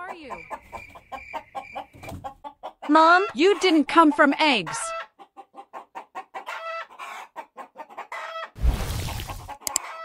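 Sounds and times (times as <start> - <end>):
chicken clucking: 0.0 - 8.6, 9.2 - 10.0
sharp clicks: 9.6 - 9.8.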